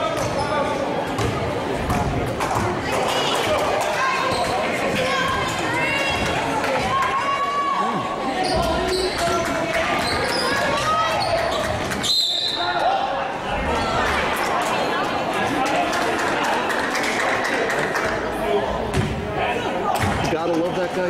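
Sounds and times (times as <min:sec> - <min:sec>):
spectators talking: 0:00.0 - 0:21.0
referee's whistle: 0:12.0 - 0:12.8.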